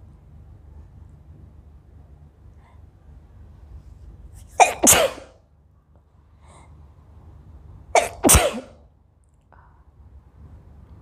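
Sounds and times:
woman sneezing: 4.6s - 5.4s, 8.0s - 8.8s.

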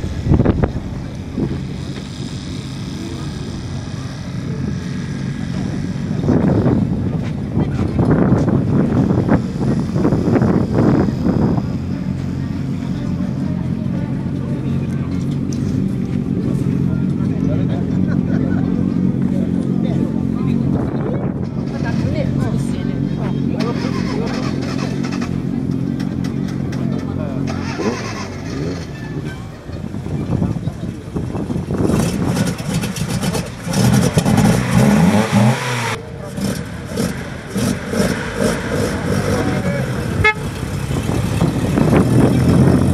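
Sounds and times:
engine idling: 0.0s - 42.9s
people talking: 0.7s - 32.6s, 33.2s - 42.9s.

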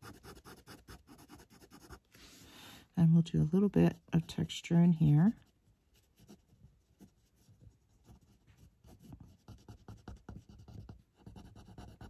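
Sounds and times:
pen nib scratching on paper: 0.0s - 2.0s, 8.0s - 12.0s.

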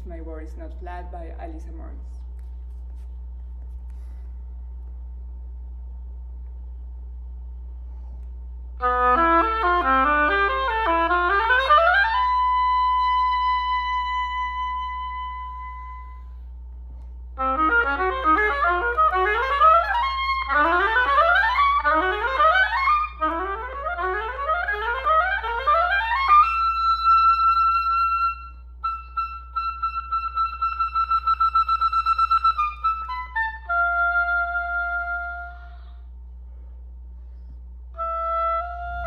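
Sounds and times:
clarinet holding a high note: 8.8s - 16.5s, 17.4s - 36.1s, 38.0s - 39.0s.

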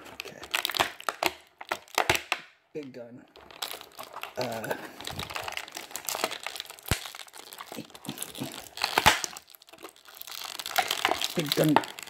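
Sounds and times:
plastic packaging crinkling: 0.0s - 2.5s, 3.3s - 12.0s
plastic snapping and clicking: 0.0s - 2.5s, 3.4s - 12.0s.

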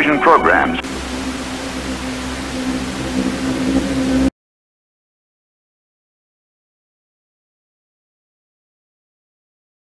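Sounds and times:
television static hiss: 0.0s - 4.1s
low electrical hum: 0.6s - 4.3s.

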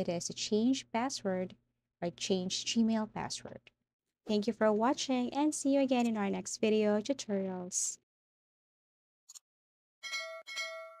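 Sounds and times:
metallic bell chime: 10.0s - 11.0s.

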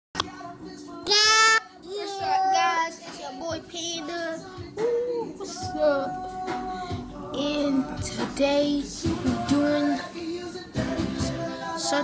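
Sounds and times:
child singing: 0.9s - 10.2s, 11.2s - 12.0s.

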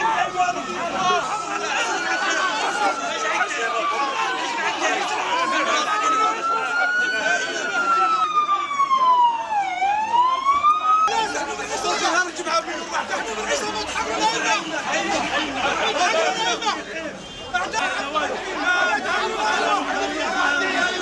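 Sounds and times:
emergency siren wailing: 0.0s - 16.8s, 17.7s - 21.0s
crowd of voices talking: 0.0s - 21.0s.

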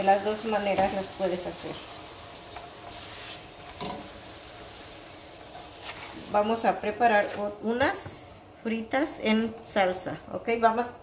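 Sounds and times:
tortilla sizzling in hot oil: 0.0s - 7.7s.

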